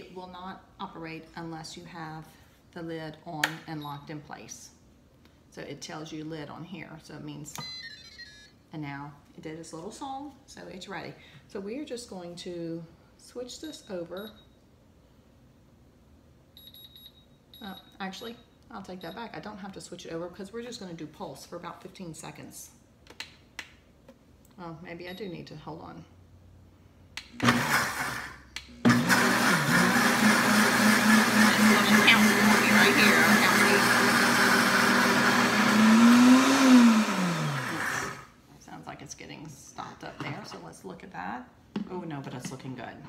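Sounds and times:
blender motor running: 27.4s - 38.3s.

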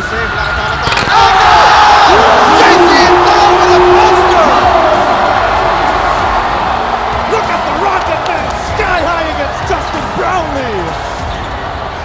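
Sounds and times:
arena crowd cheering: 0.0s - 12.0s.

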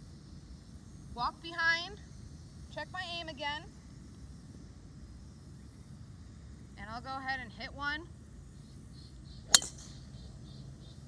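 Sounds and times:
golf club striking ball: 9.5s - 10.3s.

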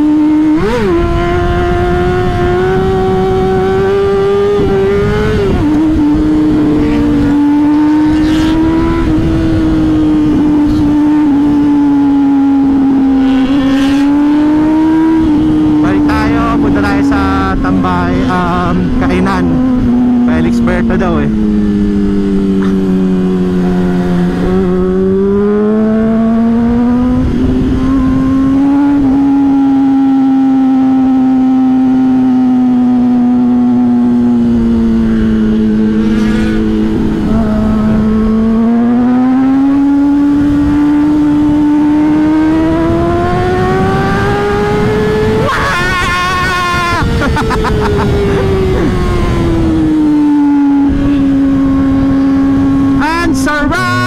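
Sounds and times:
wind across helmet microphone: 0.0s - 20.5s, 21.3s - 53.1s
motorcycle engine at high revs: 0.0s - 54.0s.

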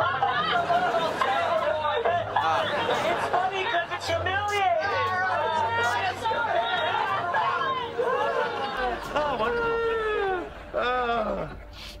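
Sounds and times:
people laughing together: 0.0s - 4.1s, 5.0s - 11.6s.

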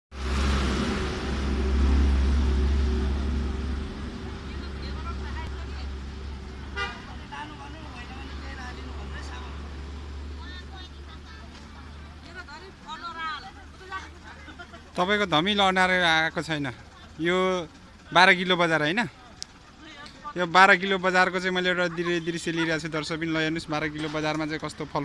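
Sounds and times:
vehicle engine running: 0.1s - 25.0s
people talking: 4.2s - 9.7s, 10.3s - 25.0s.

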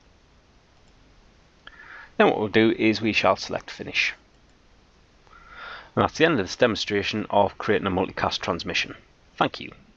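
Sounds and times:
faint room hiss: 0.0s - 9.9s.

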